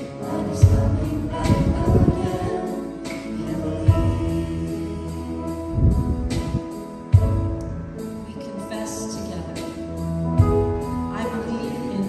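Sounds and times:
worship band playing: 0:00.0 - 0:12.0.

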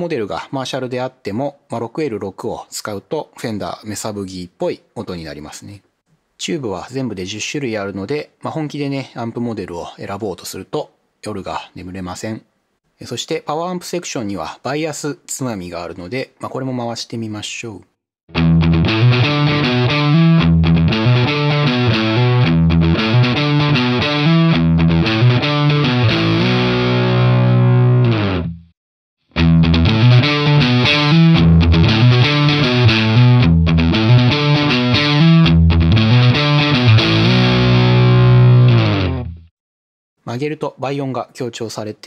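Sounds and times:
distorted electric guitar riff: 0:18.3 - 0:28.7, 0:29.3 - 0:39.5.

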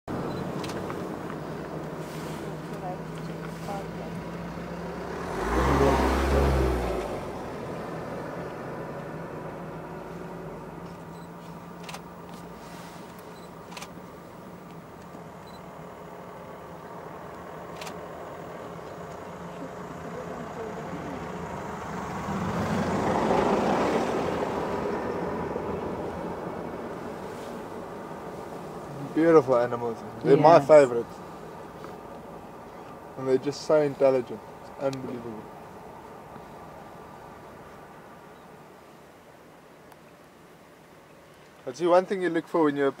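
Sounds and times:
engine running: 0:00.1 - 0:38.0.

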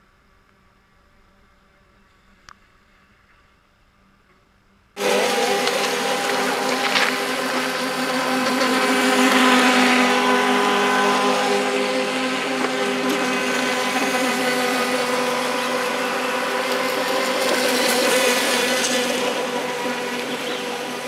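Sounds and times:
electric motor whine: 0:05.0 - 0:21.0
hull hiss and spray: 0:05.0 - 0:21.0.

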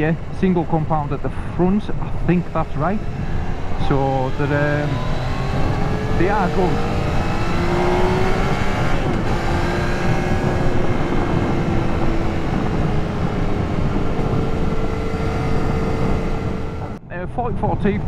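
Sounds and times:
motorcycle engine running: 0:00.0 - 0:17.0
wind rush on microphone: 0:00.0 - 0:18.0.

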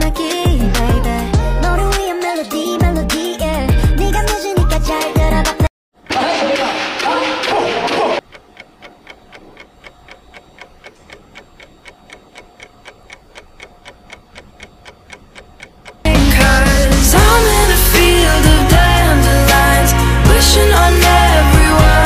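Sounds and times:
clock ticking: 0:08.2 - 0:16.2.

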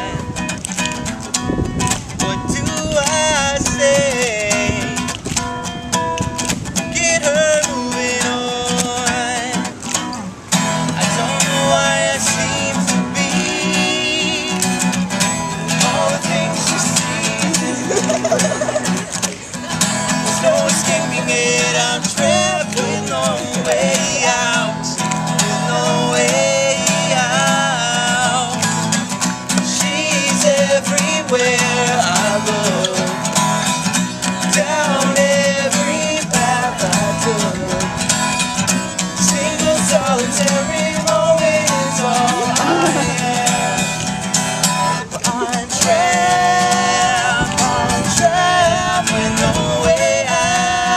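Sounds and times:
two men singing: 0:00.0 - 0:00.4, 0:01.5 - 0:05.4, 0:06.6 - 0:50.9
acoustic guitar strummed: 0:00.0 - 0:50.9.

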